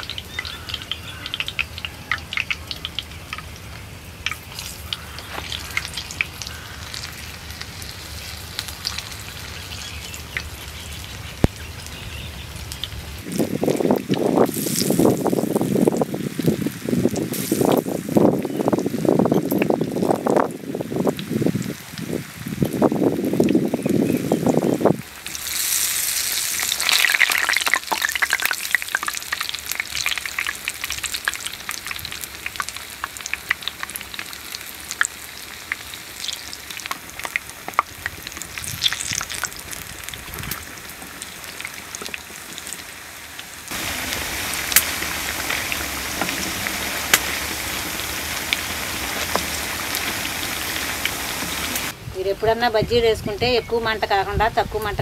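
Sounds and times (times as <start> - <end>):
battered slices deep-frying in oil: 0.0 - 52.0.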